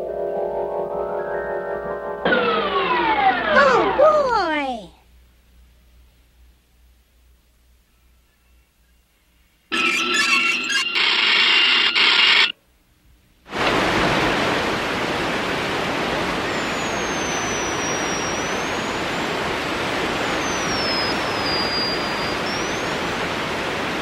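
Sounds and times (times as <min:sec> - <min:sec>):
electronic ringing tone: 0:09.7 - 0:12.6
faint high whistle: 0:16.4 - 0:19.3, 0:20.2 - 0:22.9.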